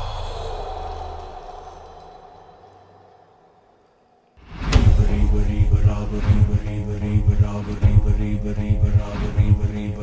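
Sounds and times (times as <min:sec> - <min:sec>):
low impact rumble: 0:04.5 - 0:10.0.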